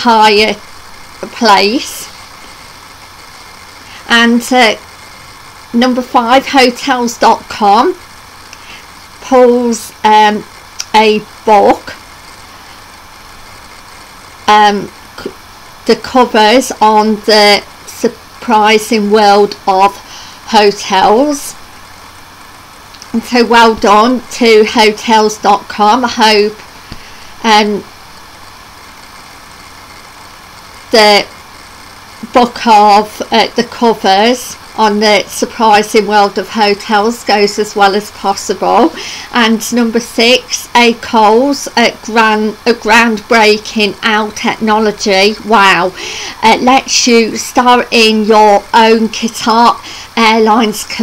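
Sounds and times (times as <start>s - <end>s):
even hiss: 0.0s - 51.0s
faint low hum: 0.0s - 51.0s.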